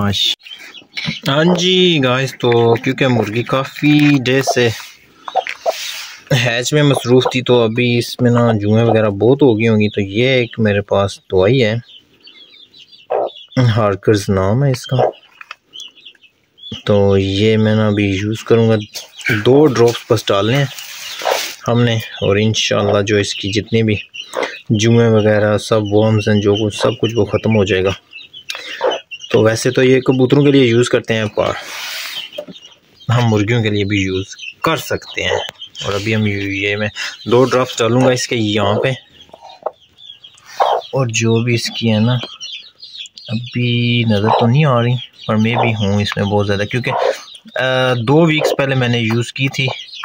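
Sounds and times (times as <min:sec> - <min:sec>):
chicks peeping: 0:00.0 - 0:50.0
hen clucking: 0:00.0 - 0:50.0.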